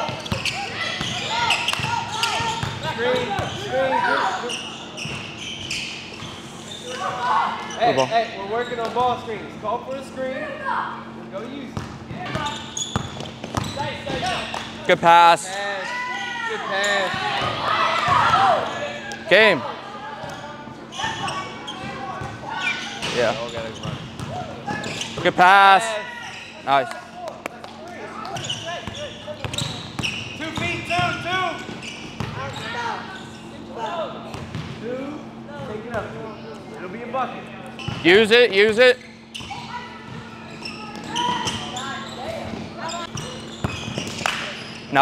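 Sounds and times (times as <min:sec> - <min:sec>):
players' voices: 0:00.0 - 0:12.9, 0:13.6 - 0:45.0.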